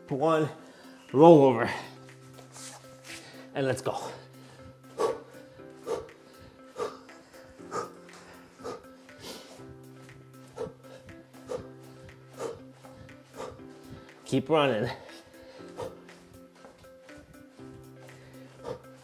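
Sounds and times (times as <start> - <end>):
background music with held tones: 0.0 - 19.0
man huffing breaths: 2.8 - 14.2, 14.8 - 19.0.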